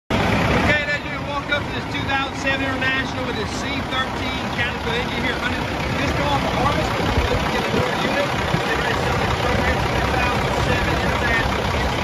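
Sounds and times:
low rumble: 0.1s - 12.0s
person talking: 0.6s - 12.0s.

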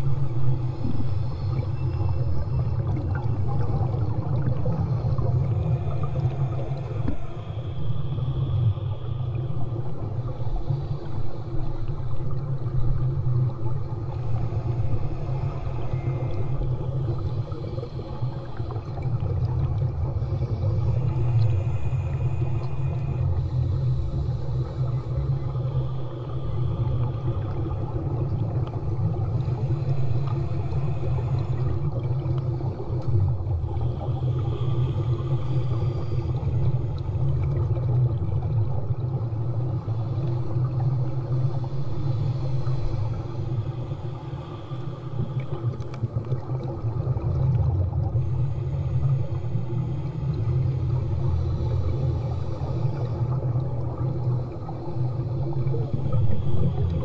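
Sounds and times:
underwater low rumble: 0.0s - 57.0s.

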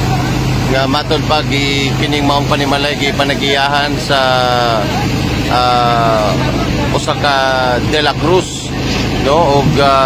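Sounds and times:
low engine drone: 0.0s - 10.0s.

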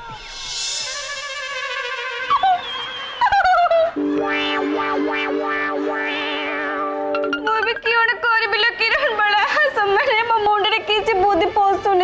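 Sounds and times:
comic background music: 4.0s - 8.1s.

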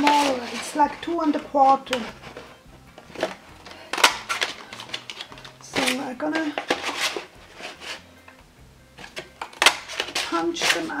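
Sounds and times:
paper rustling: 0.0s - 8.1s, 9.0s - 11.0s.

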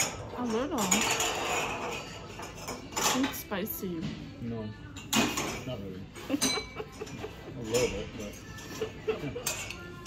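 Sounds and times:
dishes and cutlery clinking: 0.0s - 10.0s.

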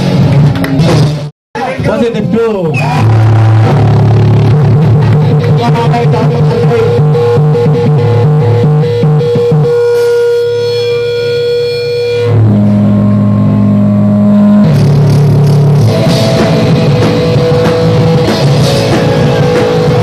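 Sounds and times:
distorted electric guitars: 0.0s - 20.0s
drums: 0.0s - 20.0s.

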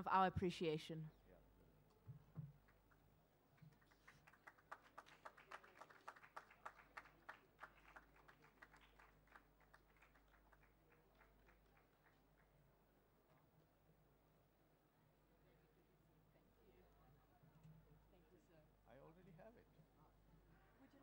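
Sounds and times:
faint hand claps: 2.4s - 12.5s.

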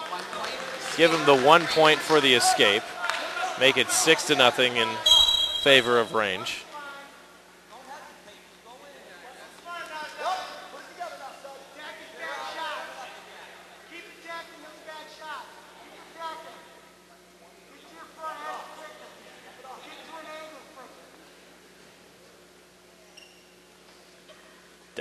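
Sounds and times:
voices shouting in a gym hall: 0.2s - 21.2s
commentary: 0.8s - 6.7s.

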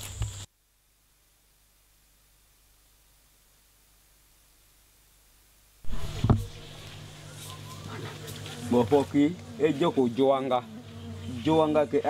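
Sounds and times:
steady low hum: 5.1s - 12.0s
bees buzzing: 5.8s - 12.0s.

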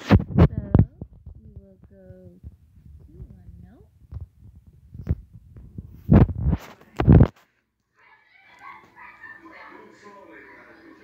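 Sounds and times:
muffled handling thumps and rustles: 0.0s - 7.4s.

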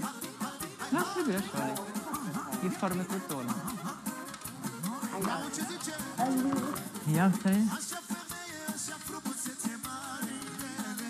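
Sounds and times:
music with singing voice: 0.0s - 11.0s.

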